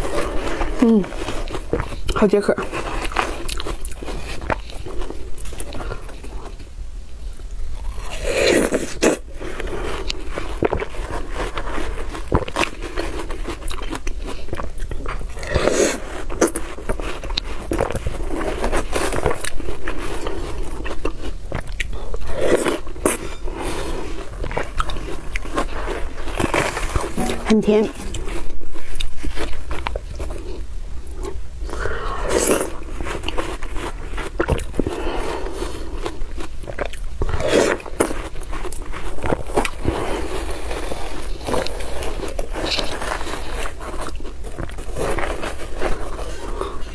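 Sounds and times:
metal spoon scraping melon: 22.5s - 29.0s.

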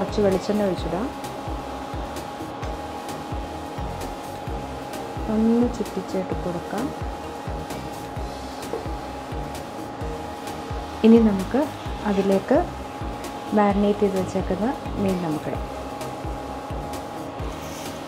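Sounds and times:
background music: 0.0s - 18.0s
cooktop cooling fan humming: 0.0s - 18.0s.

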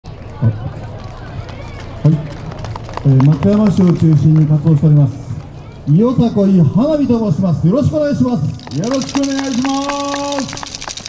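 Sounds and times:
hubbub of people: 0.0s - 11.0s.

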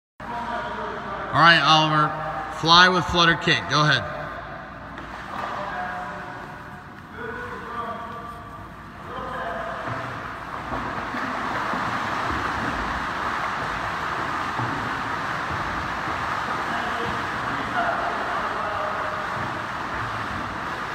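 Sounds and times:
swimmer splashing: 0.2s - 20.9s.

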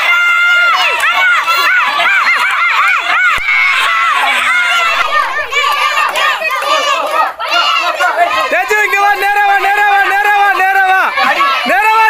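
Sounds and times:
crowd shouting: 0.0s - 12.0s.

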